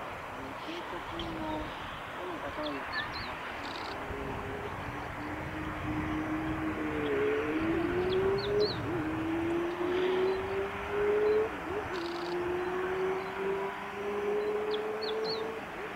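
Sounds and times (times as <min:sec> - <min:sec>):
distant engine drone: 0:00.0 - 0:15.9
steady background hiss: 0:00.0 - 0:15.9
high bird chirps: 0:02.6 - 0:04.0, 0:11.2 - 0:13.4, 0:14.4 - 0:15.5.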